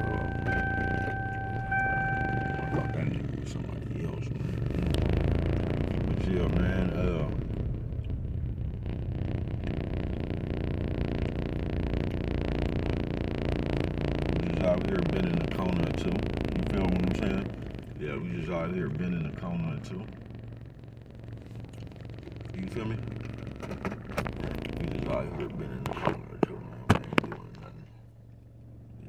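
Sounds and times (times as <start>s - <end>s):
electronic beep tone: 0.0s - 3.2s
low rumble inside vehicle cab: 0.0s - 29.0s.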